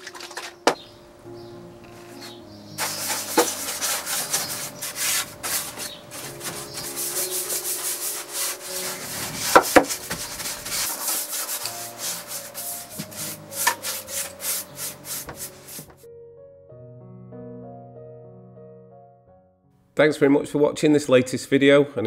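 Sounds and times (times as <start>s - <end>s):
brush scrubbing wood: 2.1s - 16.0s.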